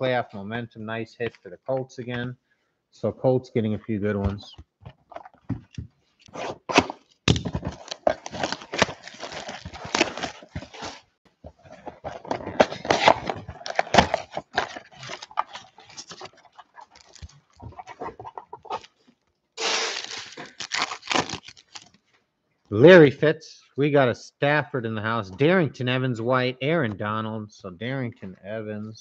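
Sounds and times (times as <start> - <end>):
cardboard box being opened: 6.3 - 18.9, 19.6 - 21.8
foil packs crackling and tearing: 6.8 - 11.1, 12.2 - 17.6, 19.6 - 21.9.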